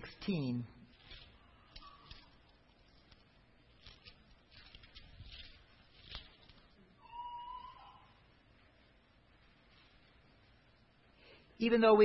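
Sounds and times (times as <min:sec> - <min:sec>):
thin high squeak: 0:07.0 - 0:08.2.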